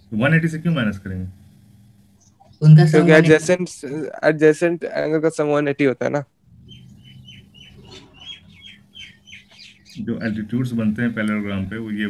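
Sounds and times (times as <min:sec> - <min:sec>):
faint low hum: 0:00.0 - 0:12.0
bird chirping: 0:02.2 - 0:02.8, 0:06.5 - 0:10.5.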